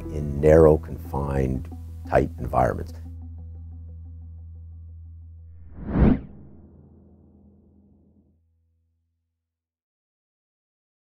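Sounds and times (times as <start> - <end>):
low musical tone: 0.0 - 5.4
whoosh: 5.5 - 7.5.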